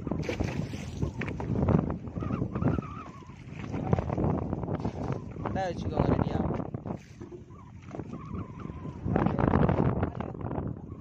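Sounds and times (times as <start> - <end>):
water splashing against boat: 0.0 - 11.0
wind buffeting microphone: 0.0 - 11.0.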